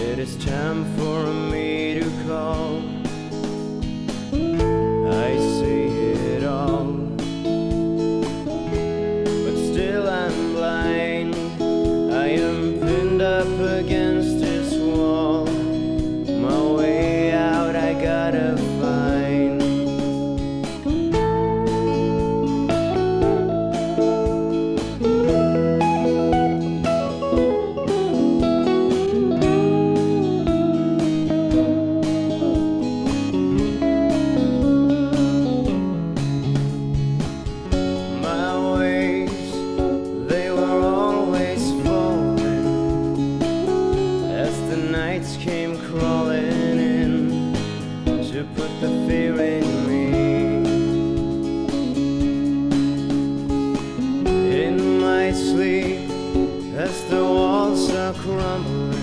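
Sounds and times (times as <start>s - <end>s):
drums: 0.0s - 59.0s
rhythm guitars: 0.0s - 59.0s
electric guitar solo: 3.0s - 59.0s.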